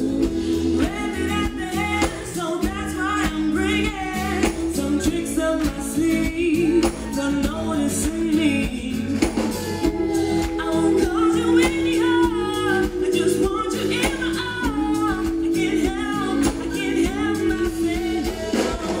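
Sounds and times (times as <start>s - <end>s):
live pop band: 0.0s - 19.0s
woman singing into microphone: 0.0s - 19.0s.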